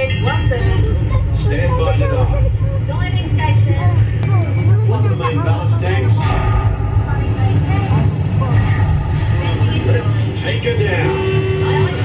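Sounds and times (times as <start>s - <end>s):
faint voices: 0.0s - 12.0s
submarine cabin hum: 0.0s - 12.0s.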